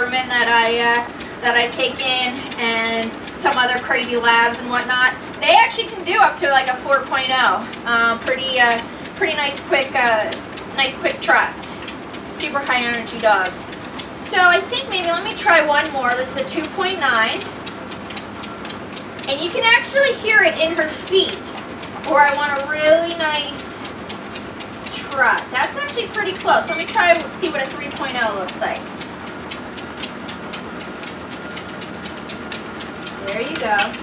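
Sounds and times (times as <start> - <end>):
woman's voice: 0.0 - 17.5, 19.2 - 23.9, 24.8 - 29.0, 33.2 - 34.0
dog paws tapping on belt: 0.0 - 34.0
treadmill belt running: 0.0 - 34.0.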